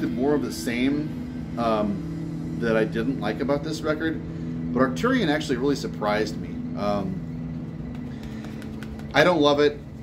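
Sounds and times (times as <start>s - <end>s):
room noise hum: 0.0s - 10.0s.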